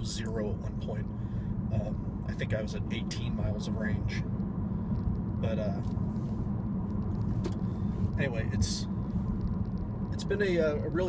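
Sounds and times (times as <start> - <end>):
road and tyre rumble in car: 0.0 - 11.0.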